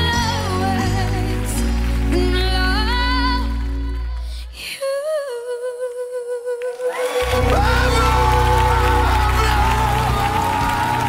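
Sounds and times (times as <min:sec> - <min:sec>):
boy singing: 0:04.9 - 0:11.0
backing band: 0:07.2 - 0:11.0.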